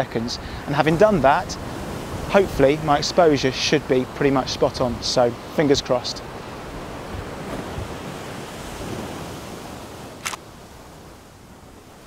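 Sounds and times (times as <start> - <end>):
sharp click: 10.2 - 10.4.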